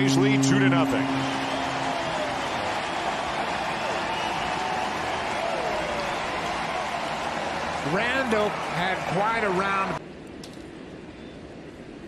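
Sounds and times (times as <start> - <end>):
large crowd cheering: 0.0 - 10.0.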